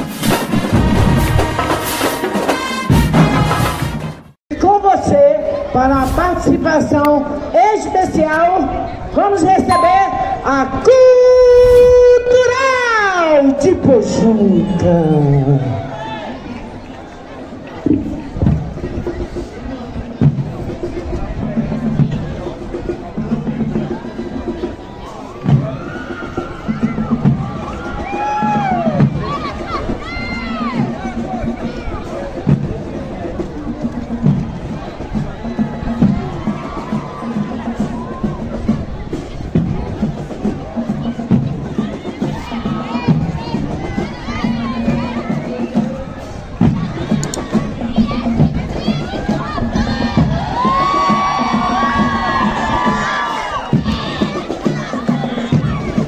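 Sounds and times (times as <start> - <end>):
crowd cheering and shouting: 7.2 - 19.0, 23.2 - 56.0
spectators whooping and shouting: 14.2 - 16.6, 25.2 - 30.9, 35.6 - 38.6, 48.8 - 56.0.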